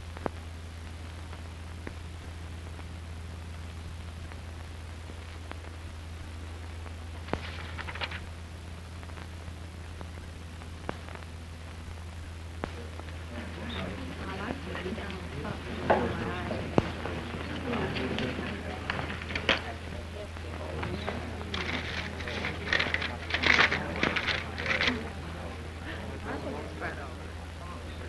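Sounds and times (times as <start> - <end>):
film soundtrack hum: 0.0 - 28.0
indistinct voices: 12.6 - 28.0.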